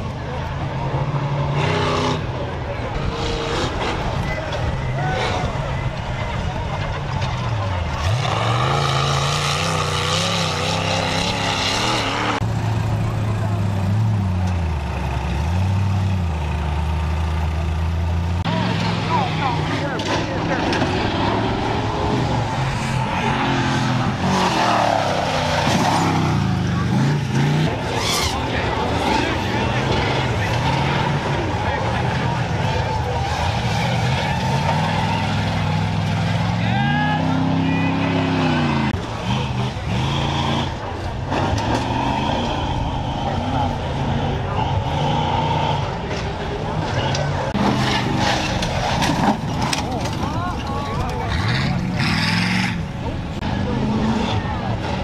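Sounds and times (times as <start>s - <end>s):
truck engines revving: 0.0s - 55.0s.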